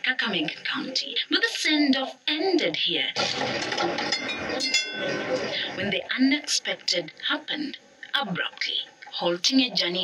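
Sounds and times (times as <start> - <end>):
ringing metallic clinks: 4.1 - 5.1.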